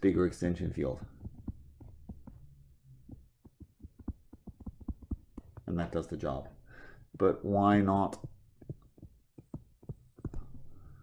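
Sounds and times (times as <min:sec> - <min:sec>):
stylus clicking on tablet screen: 0:01.0 - 0:05.7, 0:08.1 - 0:11.0.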